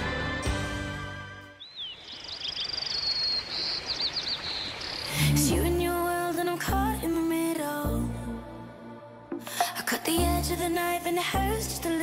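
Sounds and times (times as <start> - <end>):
music: 0.0 - 1.6, 5.2 - 12.0
small birds chirping: 1.6 - 5.4.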